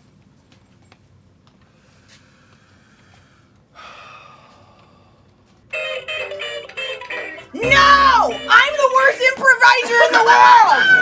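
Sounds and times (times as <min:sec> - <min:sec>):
toy electric guitar tune: 0:05.8 - 0:08.9
sliding guitar note: 0:07.6 - 0:08.8.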